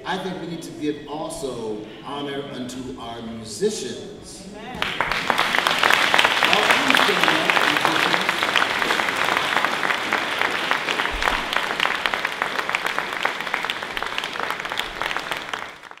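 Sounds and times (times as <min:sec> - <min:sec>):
crowd hand clapping: 0:04.7 - 0:16.0.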